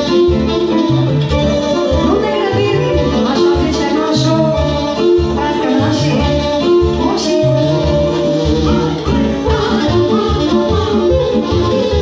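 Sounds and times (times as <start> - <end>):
folk band playing dance music: 0.0 - 12.0.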